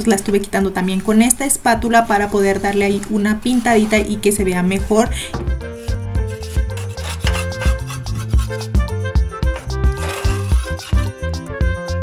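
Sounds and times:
putty knife scraping paint: 3.5s - 4.2s, 5.7s - 8.9s, 9.5s - 11.2s
background music with beat: 5.3s - 12.0s.

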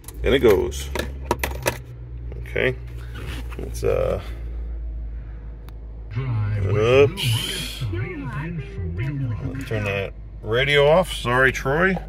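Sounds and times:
car engine idling: 0.0s - 12.0s
car radio voice and music: 6.1s - 12.0s.

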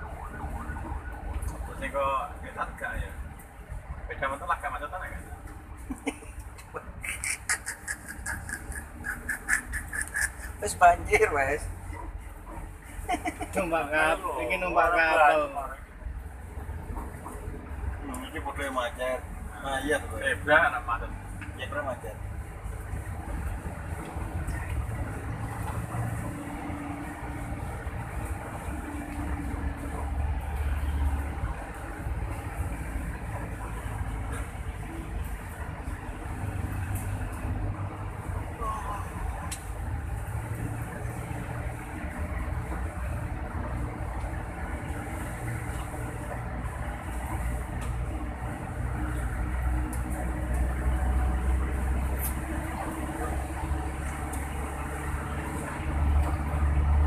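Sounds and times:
vehicle engine rumble from inside: 6.6s - 57.0s.

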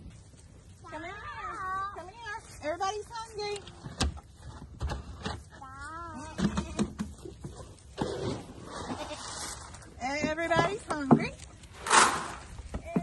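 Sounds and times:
goat bleating: 8.7s - 9.6s.

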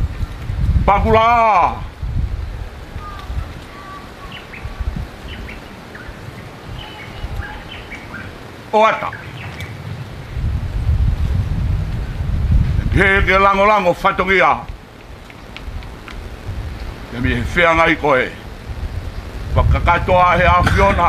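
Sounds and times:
small birds chirping: 2.6s - 10.9s, 14.7s - 20.1s
voice calling: 2.8s - 9.7s
low rumble: 9.0s - 13.6s.

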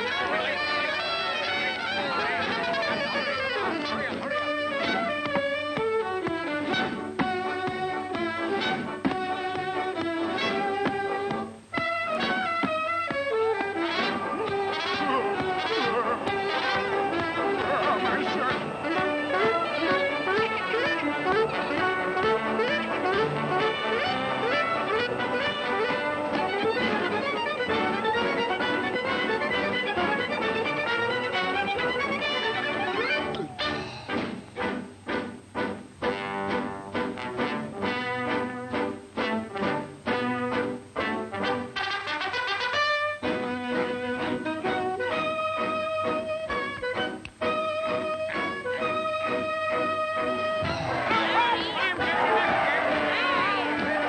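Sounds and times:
orchestral cartoon music with brass: 0.0s - 54.0s.

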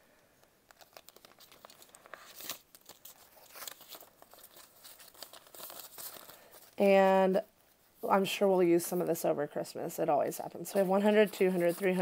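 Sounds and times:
plastic envelope crinkling: 0.4s - 6.8s, 10.7s - 12.0s
banknotes rustling: 0.7s - 7.2s, 10.6s - 12.0s.

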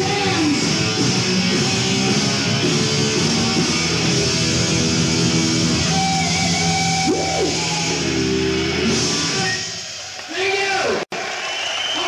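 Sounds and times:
heavy metal band playing live: 0.0s - 10.0s
electric guitar note bending: 1.5s - 9.4s.

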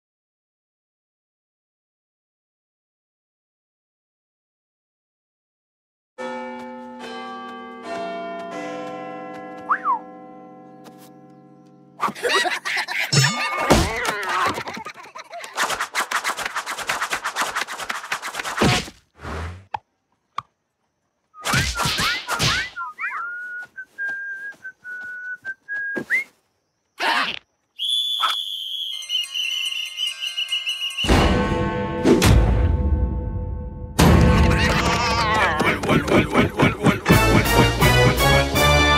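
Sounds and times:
bell chime: 6.2s - 11.6s, 28.9s - 32.0s
swooping whistle: 21.3s - 26.4s, 27.8s - 31.2s
high held tone: 28.4s - 31.2s.

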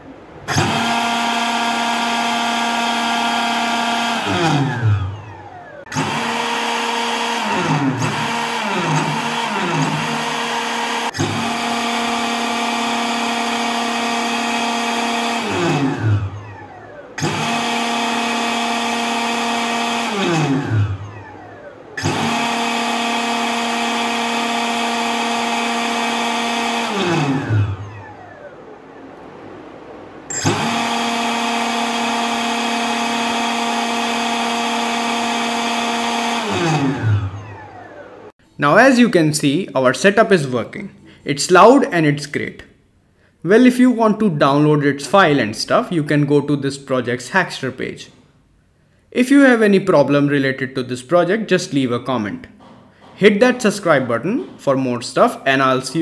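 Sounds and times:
model jet fan whining: 0.0s - 39.0s.

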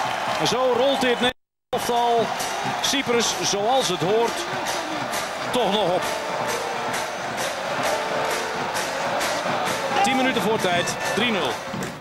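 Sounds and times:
stadium crowd: 0.0s - 12.0s
rhythmic beat: 1.8s - 12.0s.

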